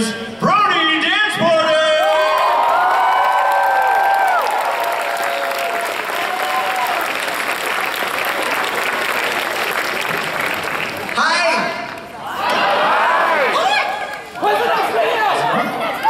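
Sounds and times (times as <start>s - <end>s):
audience applauding: 2.0s - 14.7s.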